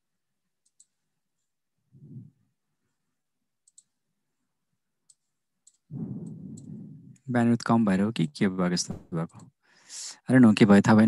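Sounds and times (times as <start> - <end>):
computer mouse clicks: 0.6 - 1.0, 3.6 - 4.0, 5.0 - 7.3
low muffled rumbling: 1.9 - 2.4, 5.9 - 7.5.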